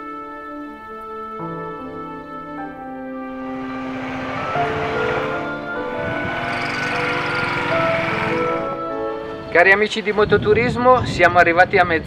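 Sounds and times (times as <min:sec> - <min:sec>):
soft background music: 0:00.0 - 0:11.9
motorcycle riding past: 0:03.2 - 0:10.2.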